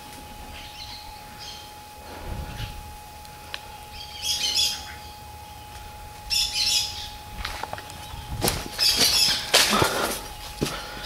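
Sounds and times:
footsteps on dry leaves: 7.3s - 11.0s.

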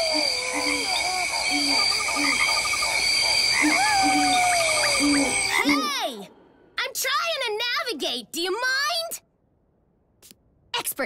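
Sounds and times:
long whistling call: 0.0s - 5.8s
insect trilling: 0.0s - 5.9s
rapid pulsing chirp: 0.0s - 5.9s.

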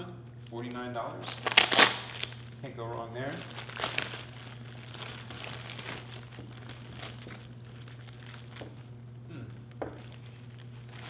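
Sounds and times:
plastic bag crinkling: 0.6s - 8.9s, 10.0s - 11.0s.

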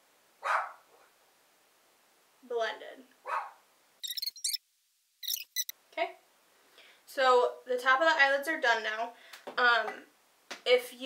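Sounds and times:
dogs barking: 0.4s - 0.8s, 3.2s - 3.6s
high-pitched yaps: 3.3s - 4.6s.

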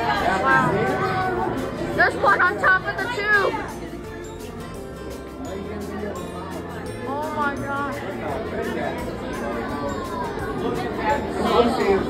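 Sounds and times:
crowd chatter in echoing hall: 0.0s - 12.0s.

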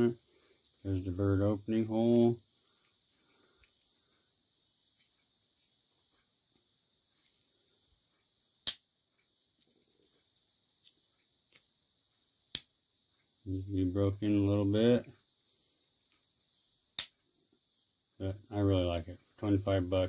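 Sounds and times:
faint handling ticks: 0.0s - 20.0s.

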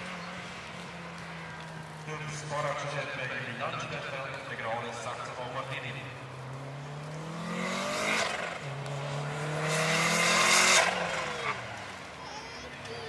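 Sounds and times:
rally car engine accelerating hard: 0.0s - 12.1s.

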